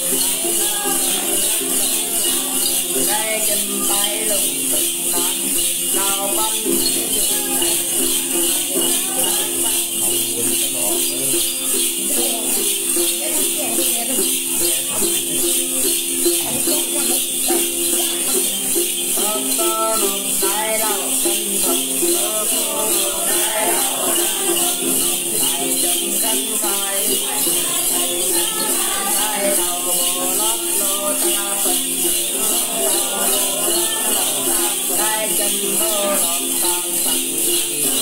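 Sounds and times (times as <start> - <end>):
person singing: 0.0 - 38.0
plucked lute: 0.0 - 38.0
rhythmic shaken rattle: 0.0 - 38.0.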